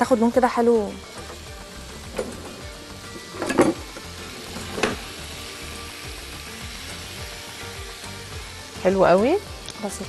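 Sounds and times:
chicken sizzling in oil: 0.0s - 10.0s
soft background music: 0.0s - 10.0s.

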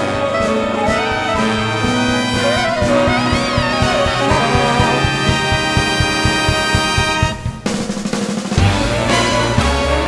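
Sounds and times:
big band jazz playing: 1.0s - 7.7s
drum beat: 3.9s - 6.6s
low sustained note: 4.0s - 6.2s.

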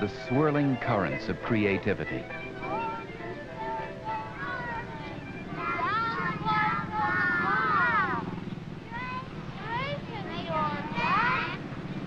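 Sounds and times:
children calling and squealing: 1.8s - 11.7s.

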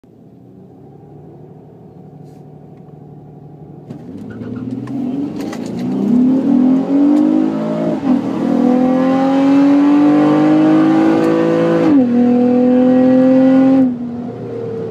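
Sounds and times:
car engine at full throttle: 0.1s - 14.9s.

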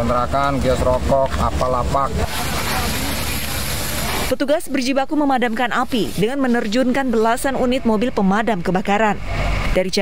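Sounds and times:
water spraying from fire hose: 0.6s - 7.3s
flames burning: 2.1s - 4.4s.

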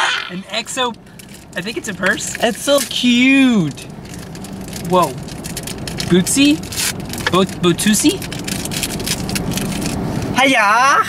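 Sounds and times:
steady low hum: 0.0s - 10.5s.

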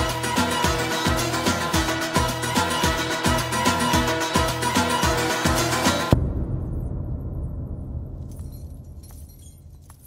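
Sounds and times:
low rumble: 6.1s - 10.0s
bangles jingling and clinking: 8.4s - 10.0s.

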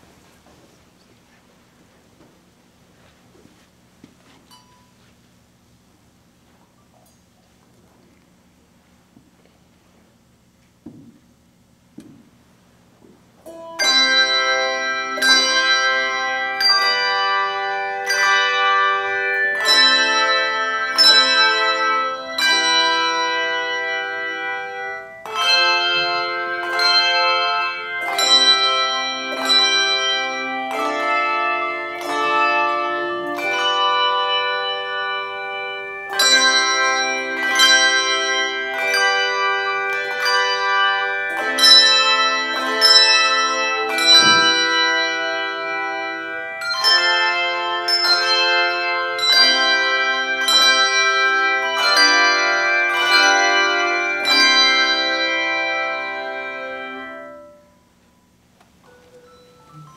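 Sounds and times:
handbell choir playing: 13.5s - 57.9s, 58.8s - 59.9s.

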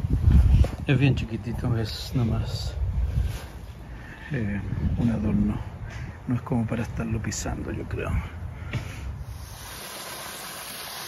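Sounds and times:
water pouring from hose splashing: 9.4s - 11.0s.

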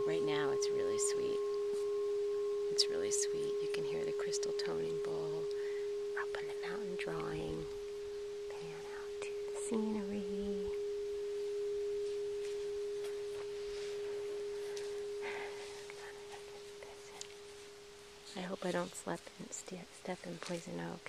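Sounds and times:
singing bowl ringing tone: 0.0s - 21.0s.

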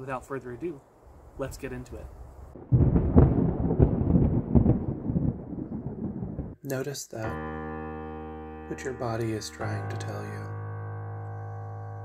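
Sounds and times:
low thunder-like rumble: 2.1s - 6.6s.

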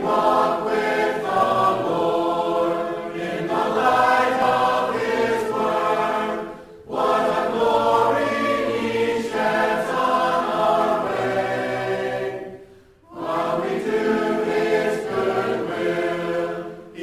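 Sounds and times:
choir singing held chords: 0.0s - 17.0s.

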